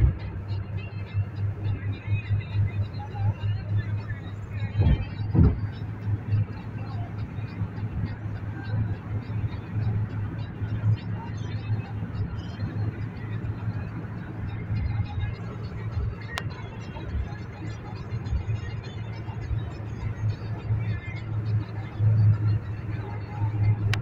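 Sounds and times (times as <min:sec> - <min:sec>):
car engine and road rumble: 0:00.0 - 0:24.0.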